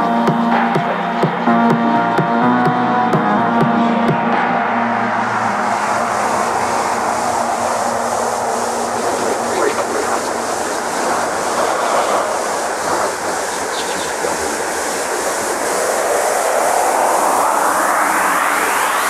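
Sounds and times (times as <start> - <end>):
electronic dance music: 0.0 - 19.0
filtered noise sweep: 0.0 - 19.0.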